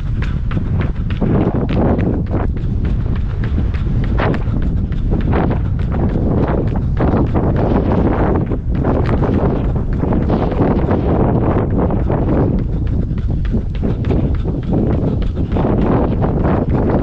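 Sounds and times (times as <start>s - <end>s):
running footfalls: 0.0s - 17.0s
wind buffeting microphone: 0.0s - 17.0s.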